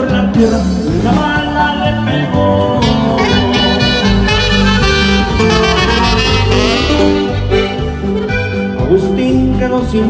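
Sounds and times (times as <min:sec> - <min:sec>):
bass guitar: 0:00.0 - 0:10.0
live band playing: 0:00.0 - 0:10.0
saxophone melody: 0:02.6 - 0:08.9.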